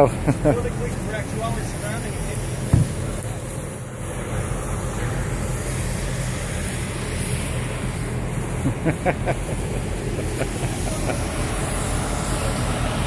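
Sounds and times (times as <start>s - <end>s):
truck engines rumbling: 0.0s - 13.0s
short knock: 2.7s - 3.0s.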